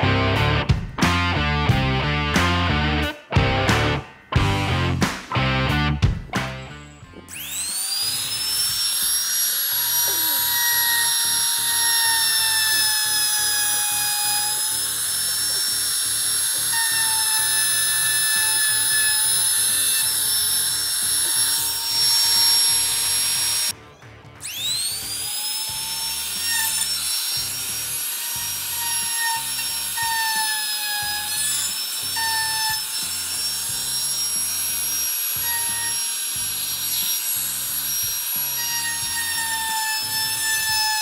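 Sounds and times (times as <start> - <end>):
wood router high-pitched whine: 7.2 - 23.8, 24.4 - 41.0.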